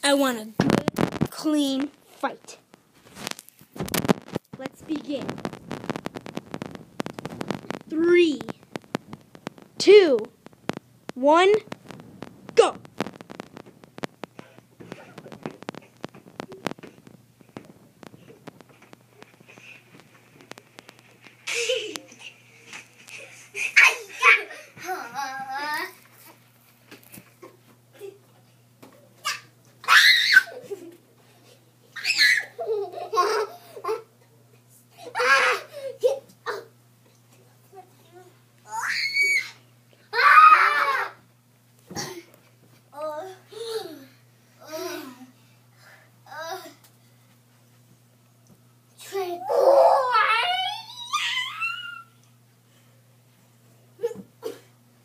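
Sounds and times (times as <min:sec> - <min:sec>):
boys laughing: 0:21.4 - 0:25.6, 0:32.4 - 0:34.1
high-pitched vocal cries: 0:29.2 - 0:30.6, 0:32.0 - 0:32.6, 0:38.7 - 0:41.2, 0:49.4 - 0:52.2
child wailing: 0:29.3 - 0:30.6, 0:38.7 - 0:41.2, 0:49.4 - 0:52.2.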